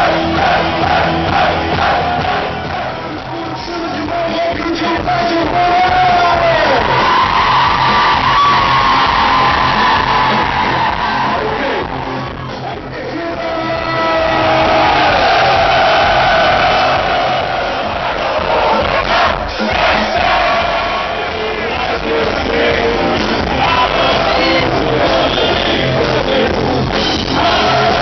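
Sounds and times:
crowd singing and shouting: 0.0 - 28.0
live band music: 17.1 - 28.0.

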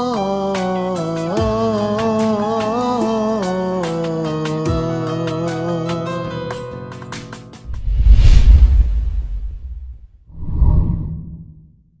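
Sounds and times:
whoosh with low rumble: 7.7 - 11.8.

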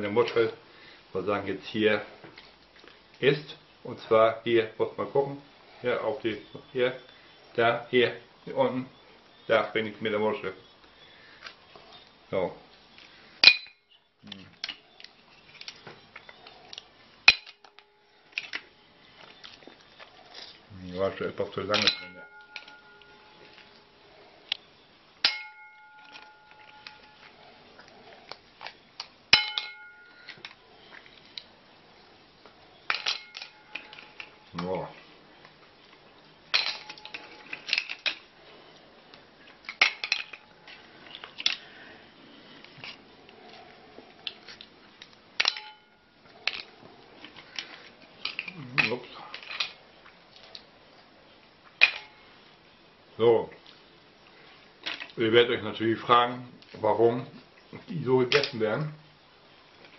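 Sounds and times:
mussel shells clattering on plate: 21.7 - 23.8, 32.8 - 34.5, 39.6 - 41.6
ringing clinks: 21.7 - 24.2, 25.2 - 27.5, 29.3 - 30.5, 32.9 - 34.6, 36.5 - 38.0, 45.4 - 46.6.

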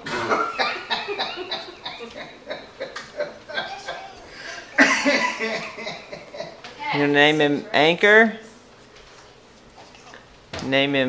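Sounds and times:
adult laughing: 0.3 - 6.6.

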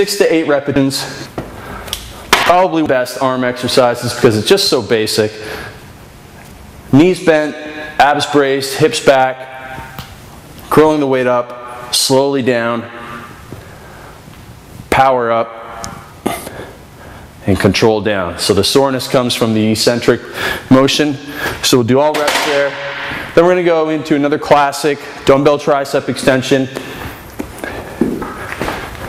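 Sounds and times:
room tone hiss: 0.0 - 29.0
shuffling footsteps: 26.8 - 29.0.

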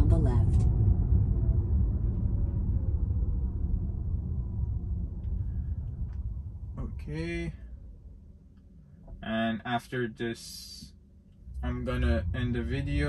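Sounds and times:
road and tyre rumble: 0.0 - 8.2, 11.3 - 13.0.

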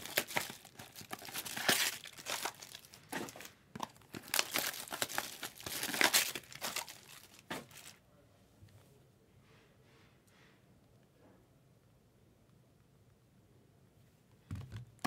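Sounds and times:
plastic packaging crinkling and tearing: 0.0 - 8.0.

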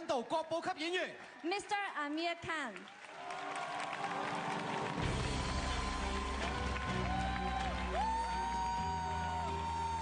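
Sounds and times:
audience applause: 0.7 - 10.0.

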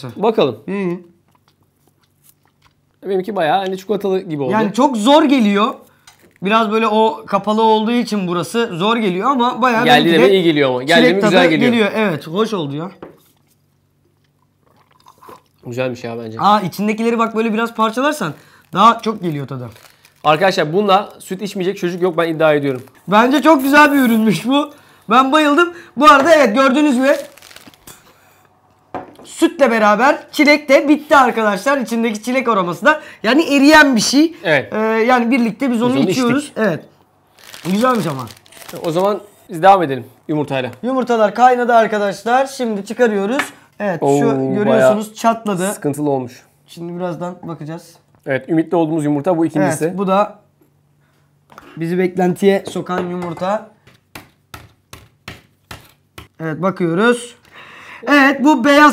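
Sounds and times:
sipping milk through straws: 14.4 - 15.6
plastic packets crinkling: 17.6 - 25.2, 26.6 - 28.2, 37.3 - 39.5.

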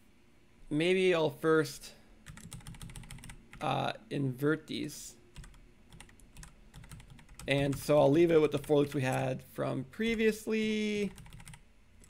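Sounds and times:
computer keyboard typing: 2.2 - 3.6, 5.3 - 9.3, 11.0 - 11.6.

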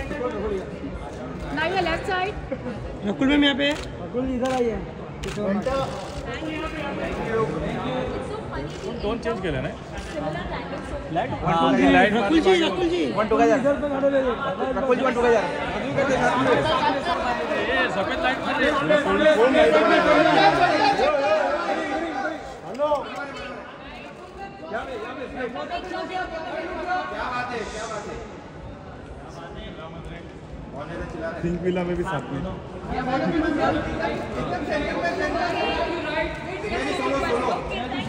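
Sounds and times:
babble of overlapping voices: 0.0 - 38.0.

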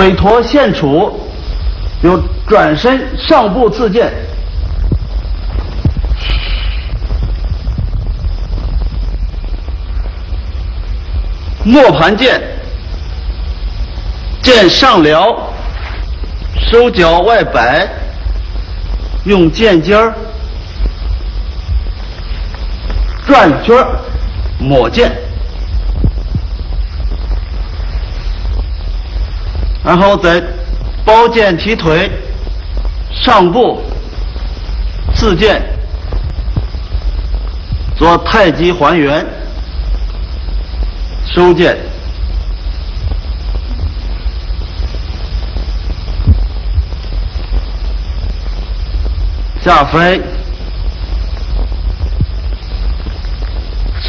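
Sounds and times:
faint hiss: 0.0 - 54.0
low hum: 0.0 - 54.0.

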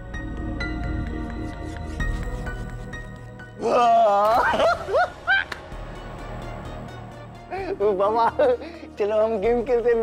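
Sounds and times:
faint background music: 0.0 - 10.0
man laughing: 4.0 - 5.6, 7.5 - 8.8.

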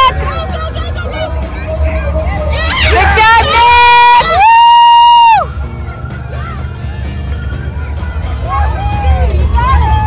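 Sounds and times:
cheering crowd babble: 0.0 - 10.0
spectator whooping: 2.6 - 5.5.

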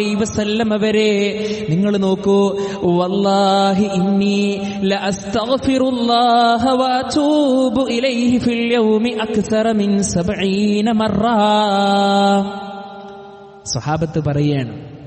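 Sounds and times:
man chanting recitation: 0.0 - 12.8, 13.6 - 14.8.

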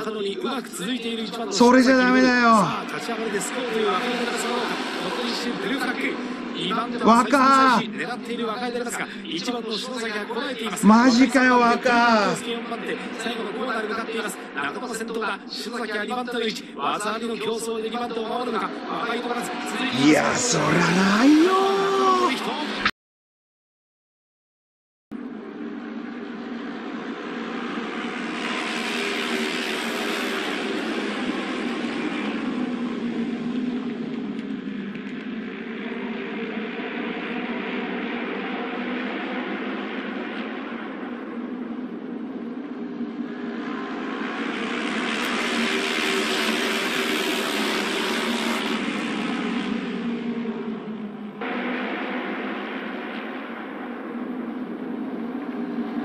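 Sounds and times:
racing motorcycles passing: 19.4 - 22.8, 43.7 - 53.4.

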